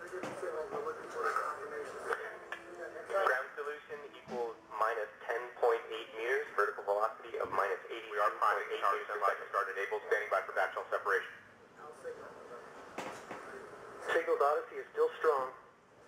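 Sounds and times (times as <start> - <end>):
voices talking over radio intercom: 0.6 - 11.4.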